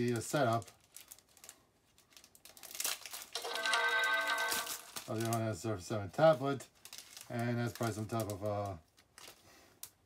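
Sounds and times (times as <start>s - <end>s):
system sound chord: 3.4s - 5.1s.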